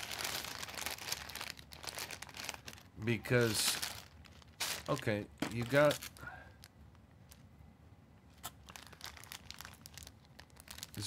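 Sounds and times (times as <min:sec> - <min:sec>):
plastic bags crinkling: 0:00.0 - 0:07.5, 0:08.4 - 0:11.0.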